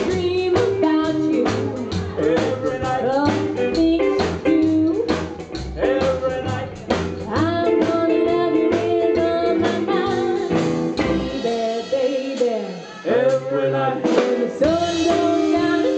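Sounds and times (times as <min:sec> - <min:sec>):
woman singing: 0:00.0 - 0:05.2, 0:07.2 - 0:15.9
rockabilly band playing: 0:00.0 - 0:15.9.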